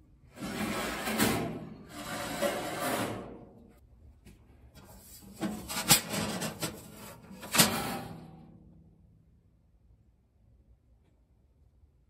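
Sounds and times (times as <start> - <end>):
metal grates scraping: 0.3 - 3.6, 4.8 - 8.6.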